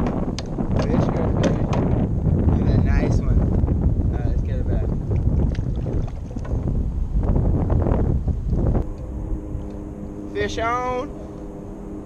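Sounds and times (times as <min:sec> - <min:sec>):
low multi-tone hum: 0:00.0 - 0:12.0
wind buffeting microphone: 0:00.0 - 0:12.0.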